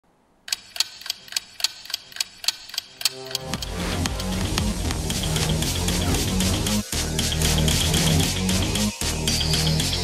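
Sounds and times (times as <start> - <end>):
clock-like ticking: 0.5 - 6.0
electronic music: 3.0 - 10.0.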